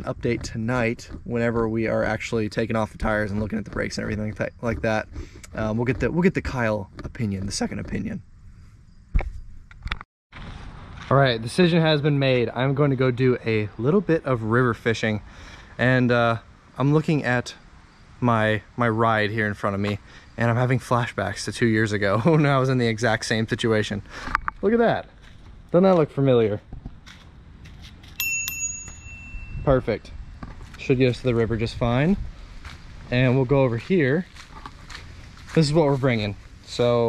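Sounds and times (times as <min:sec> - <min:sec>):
faint outdoor background noise: 0:00.0 - 0:37.0
bicycle bell ringing: 0:28.2 - 0:29.9.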